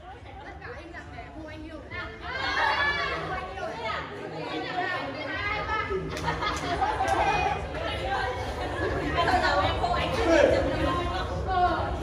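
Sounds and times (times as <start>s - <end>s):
people chattering in echoing hall: 0.0s - 12.0s.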